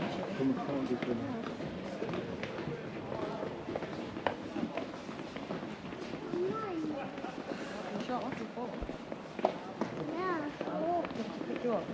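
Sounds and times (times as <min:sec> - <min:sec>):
group of people talking: 0:00.0 - 0:11.9
footsteps on stadium steps: 0:00.1 - 0:11.9.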